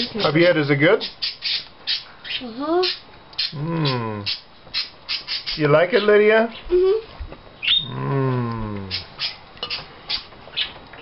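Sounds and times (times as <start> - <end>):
low voice sliding down mmm: 7.9 - 9.0.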